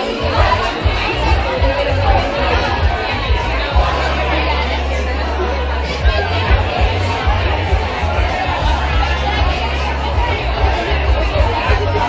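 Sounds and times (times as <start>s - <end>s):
audience chatter: 0.0s - 12.0s
music with low bass: 0.0s - 12.0s.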